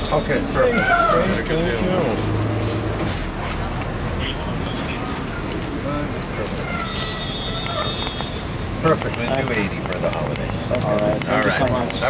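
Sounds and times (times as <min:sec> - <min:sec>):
city street traffic: 0:00.0 - 0:12.0
faint voices: 0:03.0 - 0:12.0.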